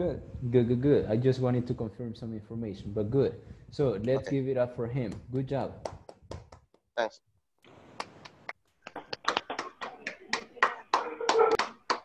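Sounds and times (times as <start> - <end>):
hand clapping: 5.8 - 6.8, 8.0 - 12.0.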